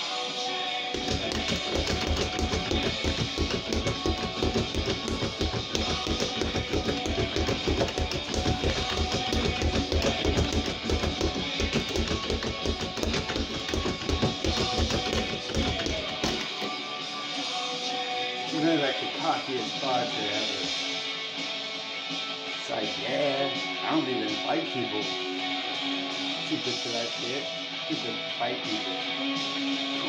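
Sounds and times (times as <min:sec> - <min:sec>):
rock music with electric guitar: 0:00.0 - 0:30.0
speed bag being punched: 0:01.0 - 0:16.7.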